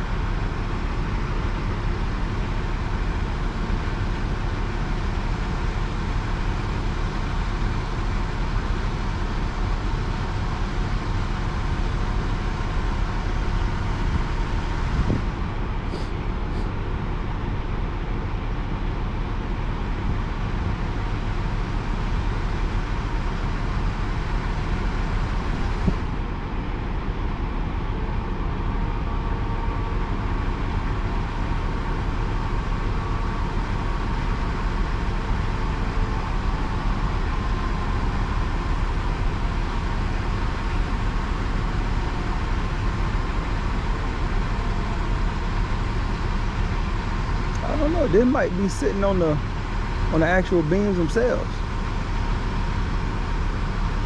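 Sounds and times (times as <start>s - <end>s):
crane diesel engine running: 0.0s - 54.0s.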